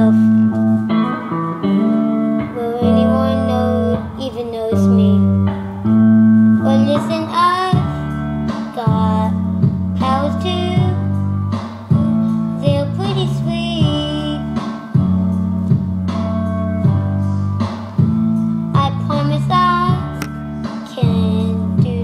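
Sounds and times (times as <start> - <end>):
boy singing: 0.0 - 0.4, 2.4 - 5.4, 6.6 - 8.0, 8.6 - 11.1, 11.9 - 14.6, 18.7 - 22.0.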